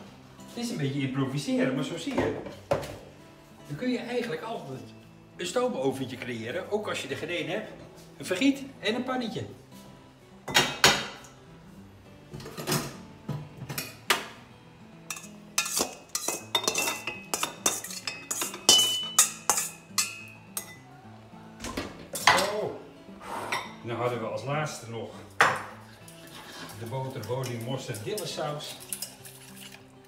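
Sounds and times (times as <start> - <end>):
metal pans clanking: 12.3 - 14.4, 15.1 - 20.8, 21.6 - 22.8.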